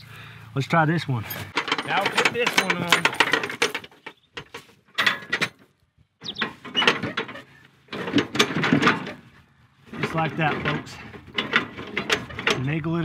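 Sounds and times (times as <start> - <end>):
steel bars clanking and rattling: 1.2 - 13.0.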